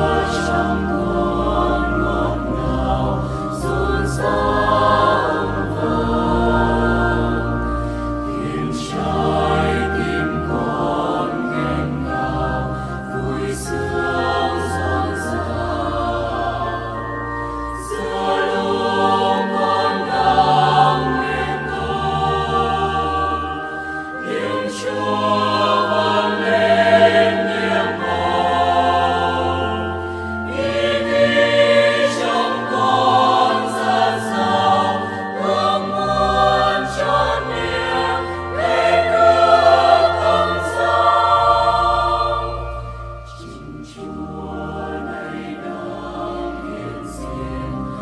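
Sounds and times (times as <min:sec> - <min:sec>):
choir singing a hymn: 0:00.0 - 0:48.0
musical accompaniment: 0:00.0 - 0:48.0.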